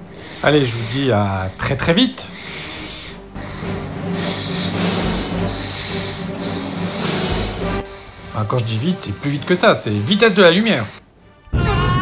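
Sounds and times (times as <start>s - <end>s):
respirator breathing: 0.0s - 11.1s
music: 0.0s - 12.0s.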